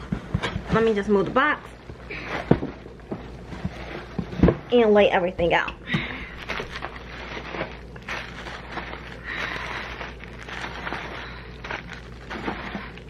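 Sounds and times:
bubble wrap crinkling: 6.1s - 13.0s.

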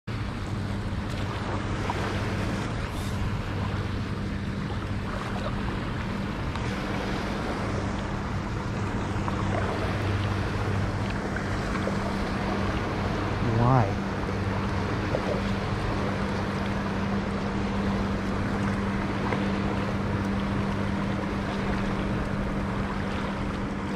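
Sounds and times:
outboard motor droning: 0.0s - 23.9s
water wash: 0.1s - 23.9s.

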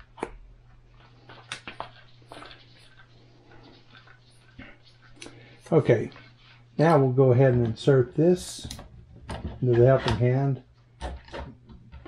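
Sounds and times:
low steady hum: 0.0s - 12.0s
soft plastic rubbing: 0.0s - 12.0s.

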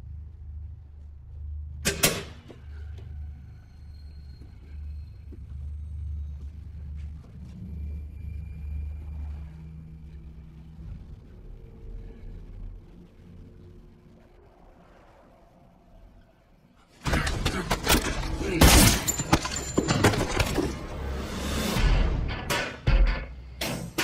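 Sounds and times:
steady low rumble: 0.0s - 16.9s.

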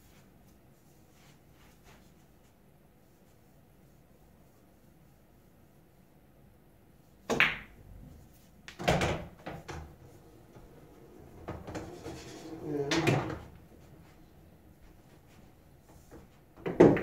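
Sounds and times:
balls rolling through return channel: 9.2s - 14.0s.

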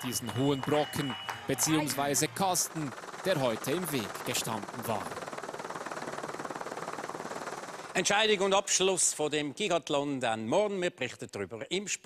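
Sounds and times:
helicopter rotor chopping: 0.0s - 9.7s.

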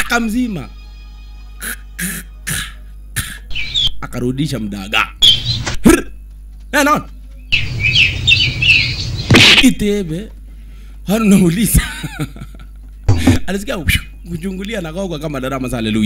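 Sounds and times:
birds chirping: 3.2s - 16.0s.

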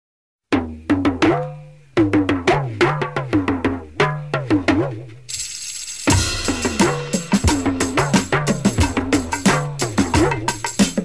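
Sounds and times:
rock drums: 4.6s - 11.0s
cymbal wash: 5.3s - 10.9s.

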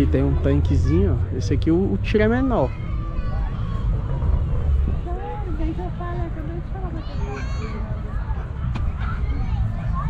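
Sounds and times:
faint voices: 0.0s - 10.0s
steady low rumble: 0.0s - 10.0s.

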